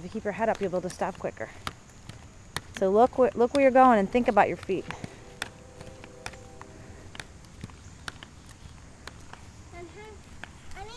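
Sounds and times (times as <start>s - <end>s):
footsteps walking: 0.0s - 10.9s
skate wheels rumbling on asphalt: 0.0s - 10.9s
skate clicks and scuffs: 4.6s - 9.6s.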